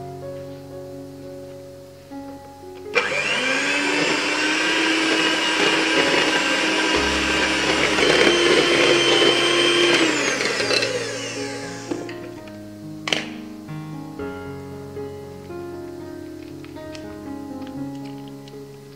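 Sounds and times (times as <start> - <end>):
electric hand mixer whining: 3.0 - 12.2.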